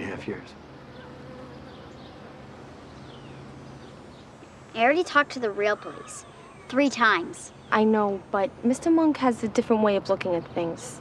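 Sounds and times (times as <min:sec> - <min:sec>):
faint steady buzz: 0:00.0 - 0:10.7.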